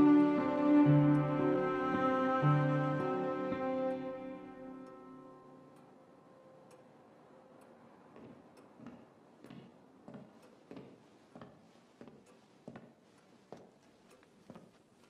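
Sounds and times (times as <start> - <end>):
soft sad instrumental music: 0.0 - 6.8
faint regular ticks: 7.6 - 15.0
soft footsteps: 8.1 - 15.0.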